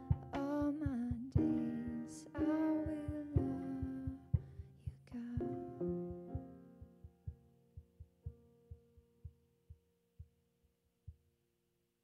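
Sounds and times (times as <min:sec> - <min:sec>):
faint low thumping: 0:00.0 - 0:10.4.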